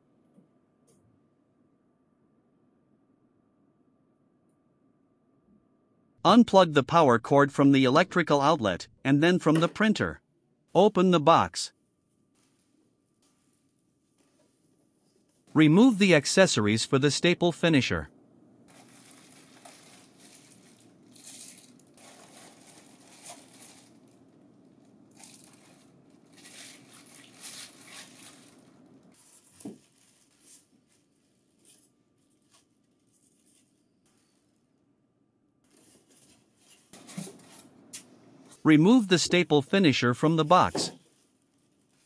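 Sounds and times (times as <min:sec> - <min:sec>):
plastic bags crinkling: 0:18.6 - 0:33.8, 0:35.7 - 0:37.8, 0:40.9 - 0:42.0.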